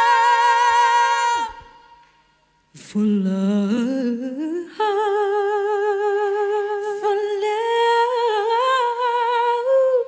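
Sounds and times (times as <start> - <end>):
women singing long wordless notes: 0.0 - 10.0.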